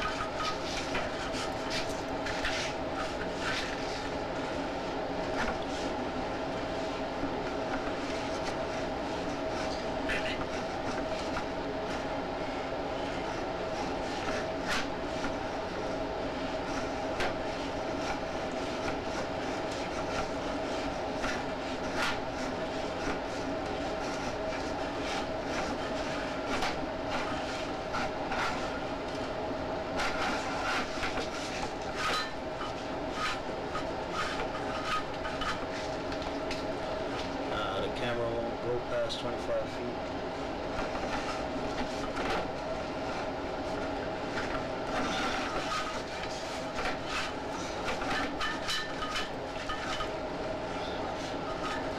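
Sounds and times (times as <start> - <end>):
steady hum: 0.0 - 51.9.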